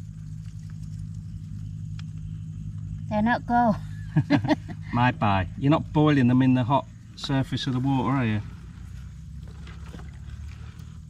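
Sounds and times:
faint ticks: 0.0 - 3.1
steady low hum: 0.0 - 11.0.

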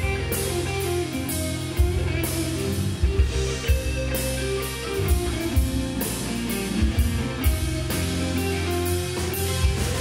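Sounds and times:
bass guitar: 0.0 - 10.0
drums and cymbals: 0.0 - 10.0
electric guitar: 0.0 - 10.0.

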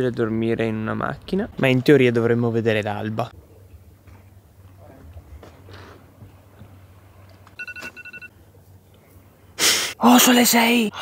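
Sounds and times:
phone alarm high electronic beeps: 7.6 - 8.3.

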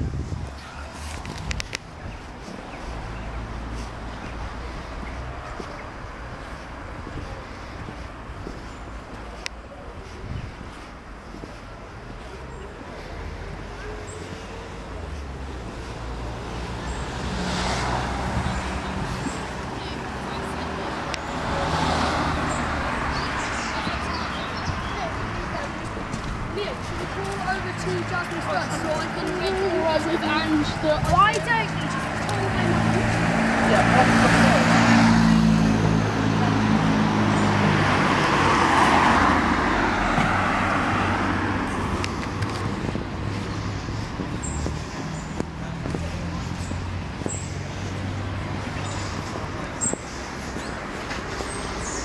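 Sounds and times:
road traffic passing: 0.0 - 52.0.

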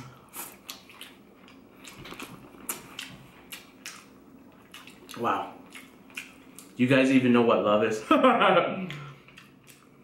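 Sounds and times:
crunchy chewing: 0.3 - 6.8.

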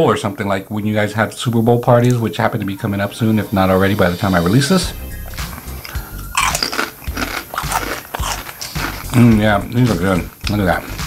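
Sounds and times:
background music: 2.0 - 11.0
potato chips crunching: 5.2 - 11.0.

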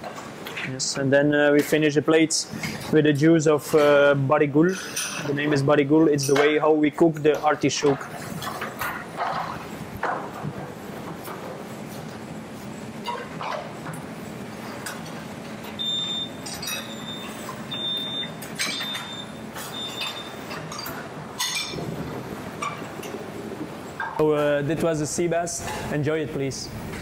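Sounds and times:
ventilation hum: 0.0 - 27.0
high electronic beep: 15.8 - 20.5
kitchen clatter: 18.4 - 23.3.

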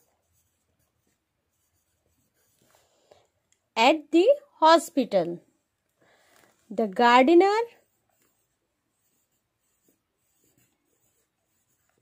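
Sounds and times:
pen scratching on paper: 0.0 - 2.8, 7.2 - 12.0.

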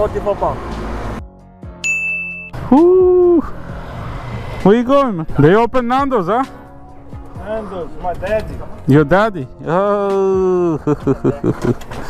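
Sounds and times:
short high-pitched beep: 1.8 - 2.6.

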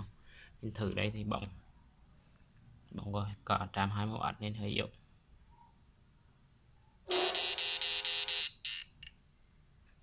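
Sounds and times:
high electronic buzz: 7.1 - 8.6.

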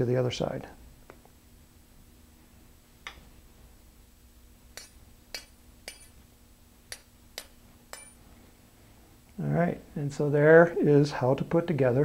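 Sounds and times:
light metallic clicks with ring: 6.9 - 8.2.

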